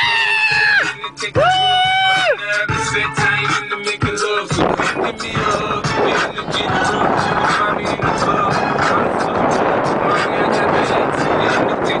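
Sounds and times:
hip hop music with vocals: 0.0 - 12.0.

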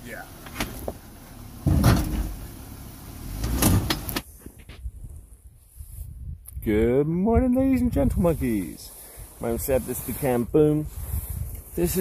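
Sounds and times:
low engine rumble: 0.0 - 4.3.

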